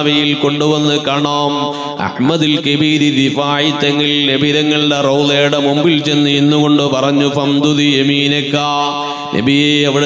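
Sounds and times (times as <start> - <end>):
man chanting religious recitation: 0.0 - 10.0.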